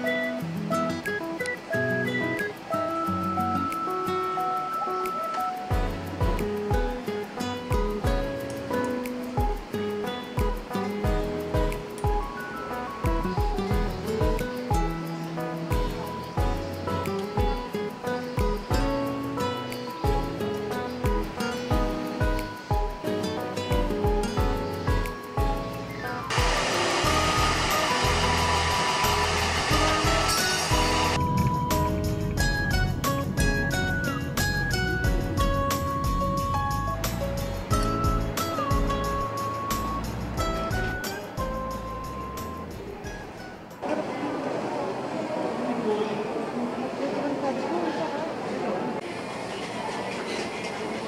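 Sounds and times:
background music: 0:00.0 - 0:43.8
hair dryer blowing: 0:26.3 - 0:31.2.

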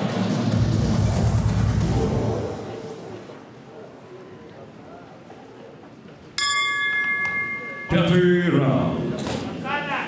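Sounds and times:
low hall murmur: 0:00.0 - 0:10.0
loud voices: 0:01.0 - 0:05.3
boxing ring bell ringing: 0:06.4 - 0:08.6.

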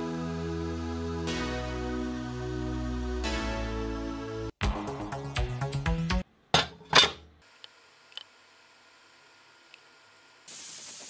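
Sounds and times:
background music: 0:00.0 - 0:06.3
faint hiss: 0:09.6 - 0:11.0.

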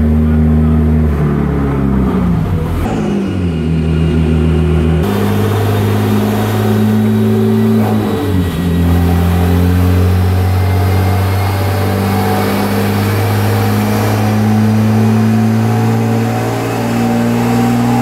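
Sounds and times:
car engine running on a dyno: 0:00.0 - 0:18.0.

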